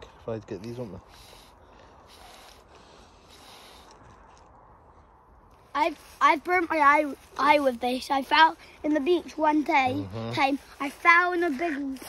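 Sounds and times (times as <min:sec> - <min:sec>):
faint rustling hiss: 0:00.1 - 0:12.0.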